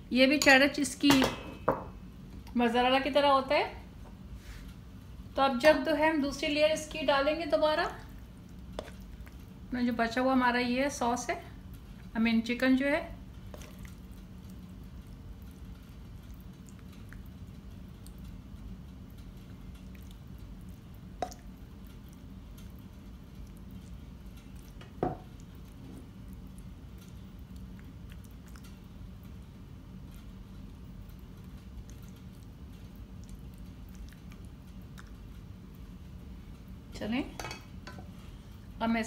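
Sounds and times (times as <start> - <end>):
steady low hum: 0.0 - 39.0
pasta squishing with spoon: 7.2 - 9.7, 13.1 - 36.2.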